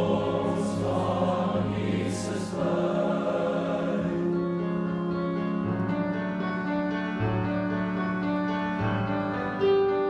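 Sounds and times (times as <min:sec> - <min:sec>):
boys' choir singing a carol: 0:00.0 - 0:04.6
low organ accompaniment: 0:00.0 - 0:10.0.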